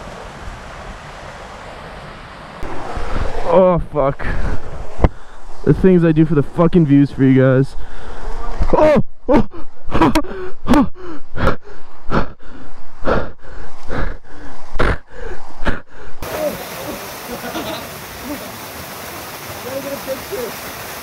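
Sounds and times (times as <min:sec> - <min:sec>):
waterfall pouring into pool: 0:16.2 - 0:21.0.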